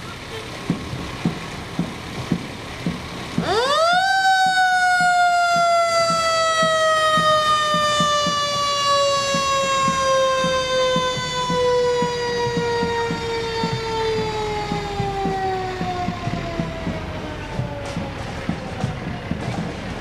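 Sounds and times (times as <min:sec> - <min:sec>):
fire engine siren: 0:03.3 - 0:20.0.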